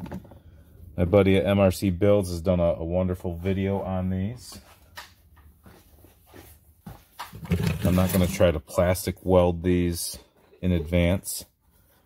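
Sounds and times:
man speaking: 0:01.0 - 0:04.6, 0:07.6 - 0:11.5.

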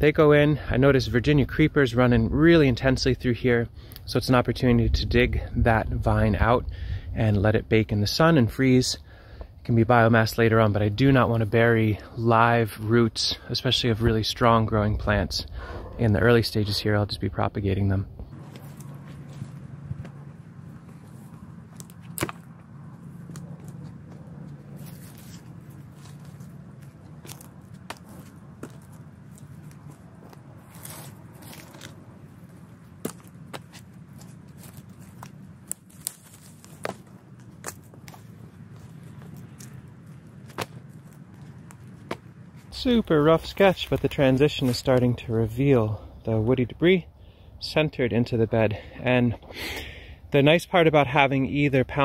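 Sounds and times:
steady low hum: 0:00.0 - 0:52.0
brush and twigs crackling: 0:18.2 - 0:45.3
vines torn out of ground: 0:20.9 - 0:45.2.

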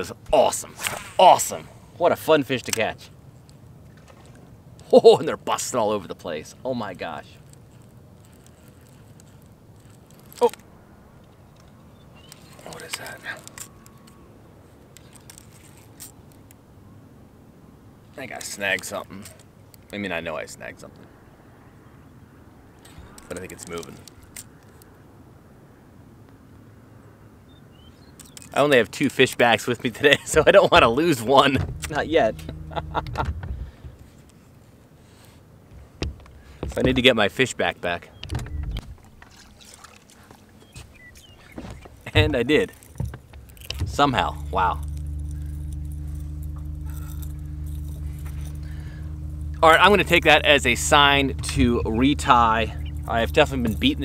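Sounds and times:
fishing reel clicks and rattles: 0:07.4 - 0:10.6, 0:42.6 - 0:54.0
low background rumble: 0:30.2 - 0:34.1, 0:40.6 - 0:54.0
boat and tackle knocking: 0:41.4 - 0:44.6.

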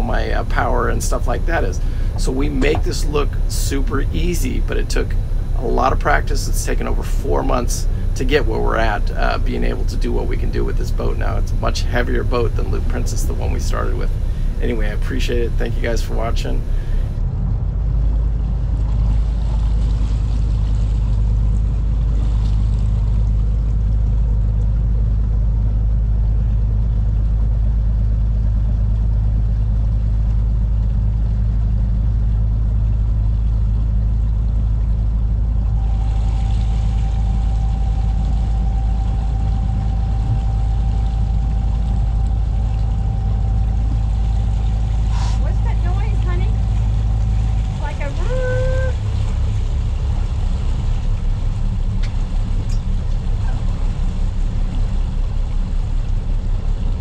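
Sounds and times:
thin steady high tone: 0:00.0 - 0:17.2, 0:35.5 - 0:50.0
boat engine droning: 0:00.0 - 0:57.0.

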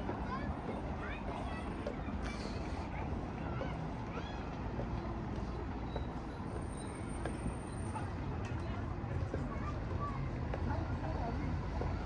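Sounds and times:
low rumble of traffic: 0:00.0 - 0:12.0.

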